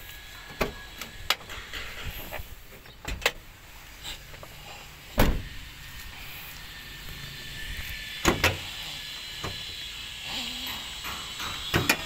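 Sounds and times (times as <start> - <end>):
car door shutting: 5.2 - 5.5.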